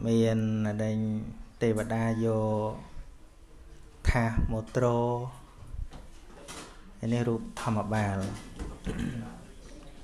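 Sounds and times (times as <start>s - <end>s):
man speaking: 0.0s - 3.0s, 4.0s - 5.5s, 7.0s - 9.5s.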